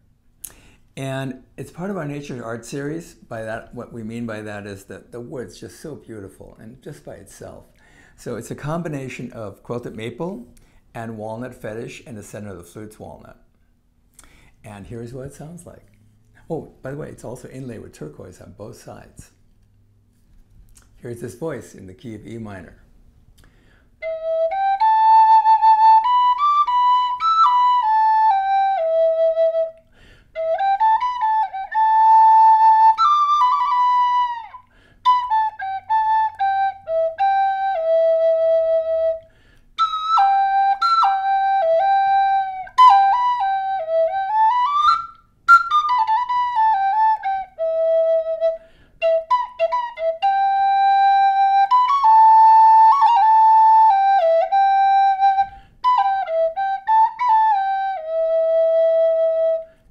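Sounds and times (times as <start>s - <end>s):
flute playing slow melody: 24.0s - 59.8s.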